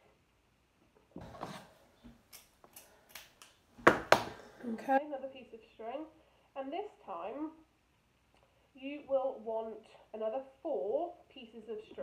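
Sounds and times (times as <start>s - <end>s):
woman speaking: 4.6s - 7.7s, 8.8s - 12.0s.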